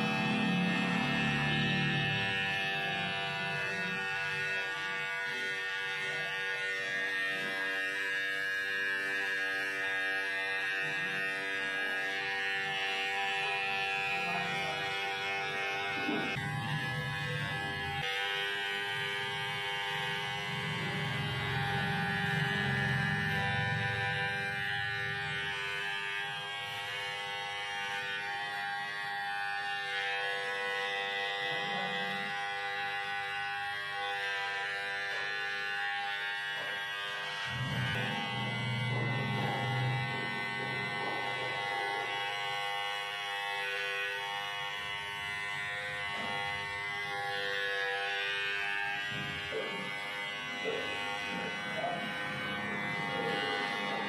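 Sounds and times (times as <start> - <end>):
electric hair clipper buzzing: 0.0 - 54.0.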